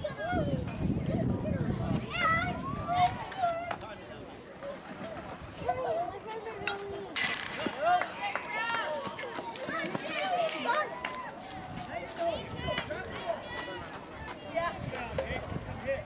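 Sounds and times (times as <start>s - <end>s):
people calling out and chattering: 0.0s - 16.0s.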